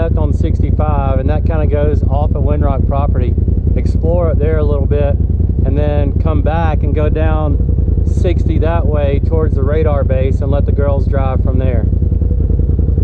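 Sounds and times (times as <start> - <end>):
people talking: 0.0 - 11.9
engine droning: 0.0 - 13.0.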